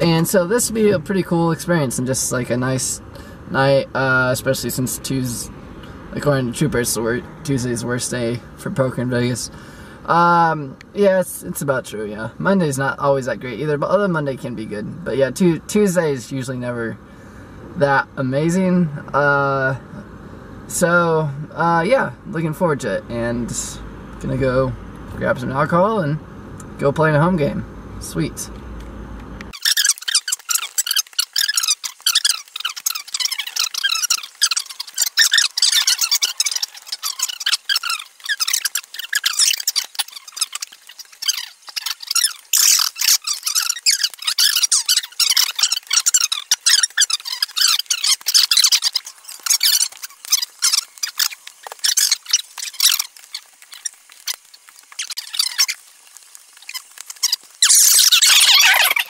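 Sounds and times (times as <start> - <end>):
sped-up squeaky chatter: 29.5 - 59.0.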